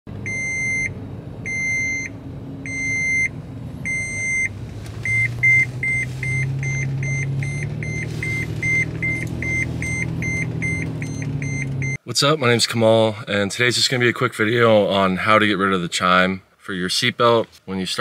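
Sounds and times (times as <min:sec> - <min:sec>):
engine and road noise: 0:00.1 - 0:18.0
seat belt reminder beeps: 0:00.2 - 0:00.9, 0:01.5 - 0:02.1, 0:02.7 - 0:03.3, 0:03.9 - 0:12.0.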